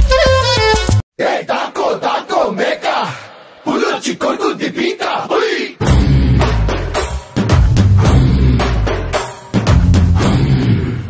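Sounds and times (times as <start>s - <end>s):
men chanting rhythmic shouts: 1.2s - 5.8s.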